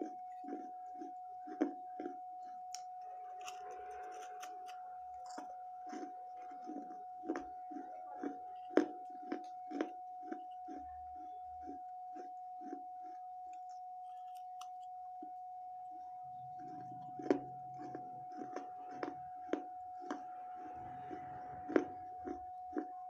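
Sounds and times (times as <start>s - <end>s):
chewing gritty crunches: 0.0s - 14.9s, 16.5s - 23.0s.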